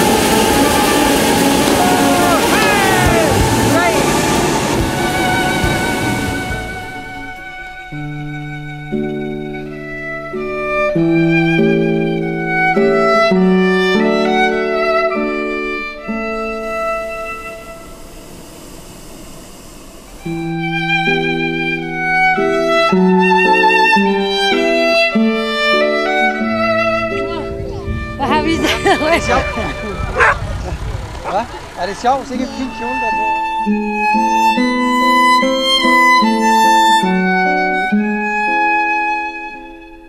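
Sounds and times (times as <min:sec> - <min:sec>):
propane burner roaring: 0:00.0 - 0:08.2, 0:15.3 - 0:23.3, 0:23.9 - 0:37.8
background music: 0:00.0 - 0:17.9, 0:20.3 - 0:30.5, 0:31.8 - 0:40.0.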